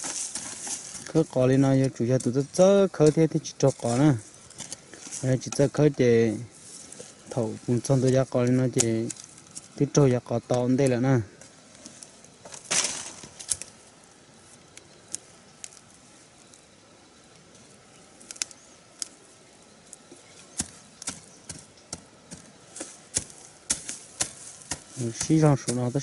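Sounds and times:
digging tool striking soil: 0:00.0 - 0:05.8, 0:20.4 - 0:26.0.

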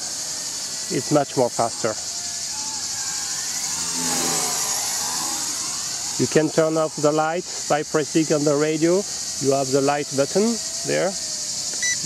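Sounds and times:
high insect buzz: 0:00.0 - 0:12.0
quadcopter motors whining: 0:00.0 - 0:12.0
lower hum: 0:01.7 - 0:07.0.

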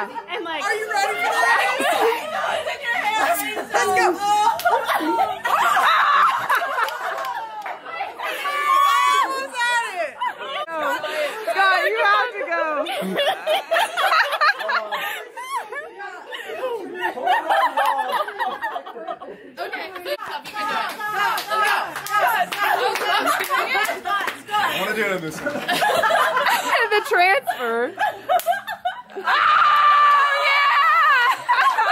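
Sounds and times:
people chattering: 0:00.0 - 0:31.9
people laughing: 0:00.0 - 0:31.9.

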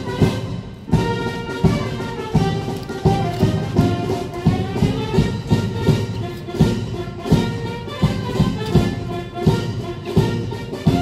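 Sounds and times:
brass band playing a march: 0:00.0 - 0:11.0
steady drum beat: 0:00.0 - 0:11.0.

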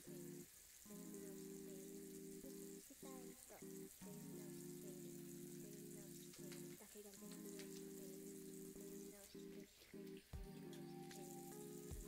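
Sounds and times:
water running into sink: 0:00.0 - 0:09.5
soft music with low chords: 0:03.3 - 0:12.0.

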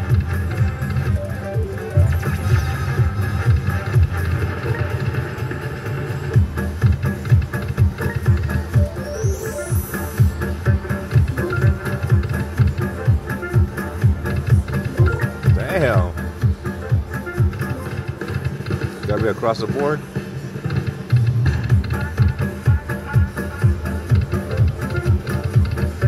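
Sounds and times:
slot machine bonus music: 0:00.0 - 0:05.7, 0:06.6 - 0:18.1.

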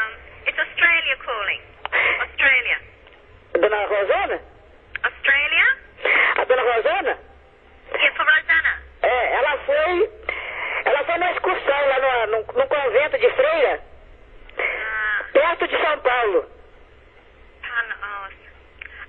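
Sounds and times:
voices over phone line: 0:00.0 - 0:19.0.

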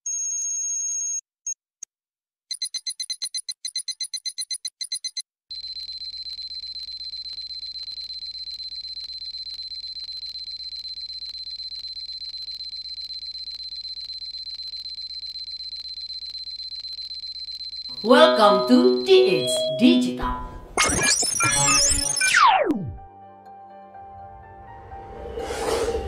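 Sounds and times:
fast electronic ticking: 0:02.5 - 0:19.4
high-pitched electronic tone: 0:17.9 - 0:23.1.

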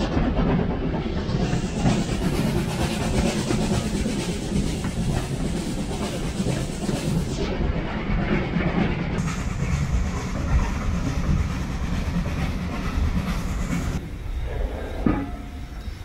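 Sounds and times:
train wheels rumbling on rails: 0:00.0 - 0:16.0.

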